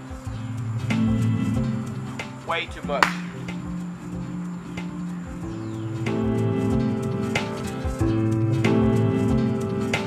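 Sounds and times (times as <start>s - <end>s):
background music with steady beat: 0.0s - 10.0s
hands clapping: 3.0s - 3.7s.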